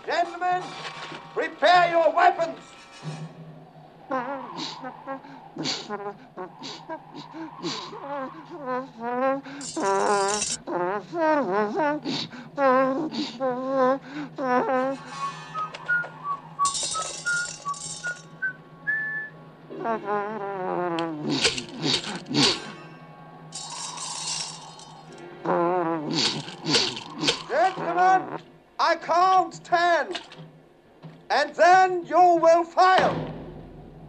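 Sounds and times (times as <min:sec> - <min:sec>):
men laughing: 0:04.1 - 0:08.6
rising run of musical notes: 0:15.0 - 0:19.4.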